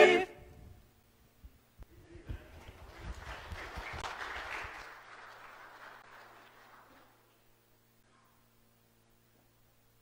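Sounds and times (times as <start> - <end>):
congregation applauding: 2.5 - 7.5.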